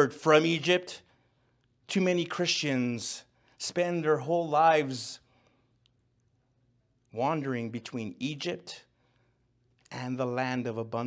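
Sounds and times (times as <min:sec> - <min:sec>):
man's voice: 0:00.0 - 0:01.0, 0:01.9 - 0:05.2, 0:07.2 - 0:08.9, 0:09.9 - 0:11.0.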